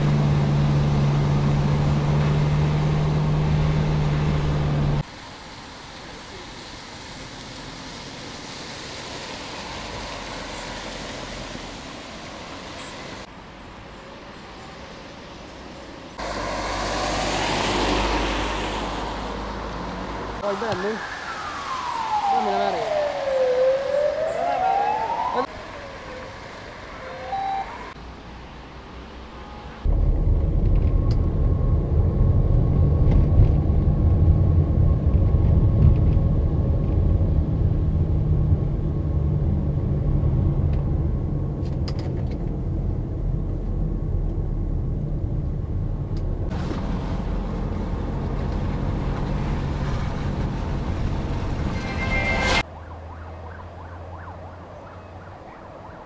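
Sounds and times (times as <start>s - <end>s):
emergency vehicle siren wailing: 20.4s - 28.0s, 50.2s - 56.0s
loud steady low rumble: 29.8s - 41.8s, 42.5s - 46.6s.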